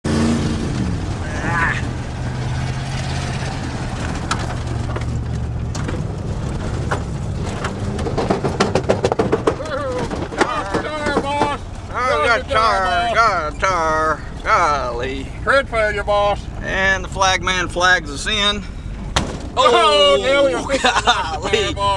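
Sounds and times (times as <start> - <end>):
race car engine under load: 0.0 - 21.9
person calling out loudly: 1.2 - 1.9
sharp clicks and knocks: 3.6 - 11.8.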